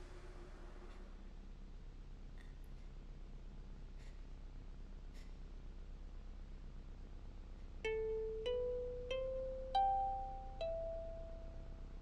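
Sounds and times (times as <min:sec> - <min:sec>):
faint steady hum: 0:00.0 - 0:12.0
plucked notes: 0:07.9 - 0:12.0.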